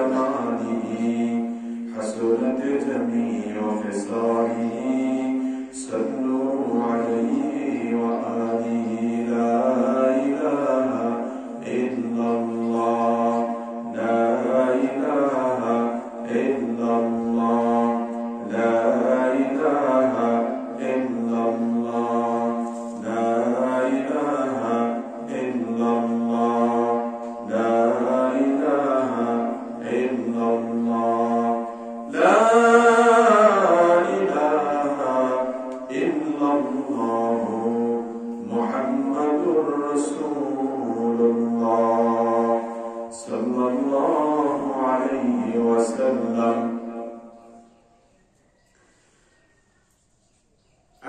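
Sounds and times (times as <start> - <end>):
man chanting into a microphone: 0.0 - 47.8.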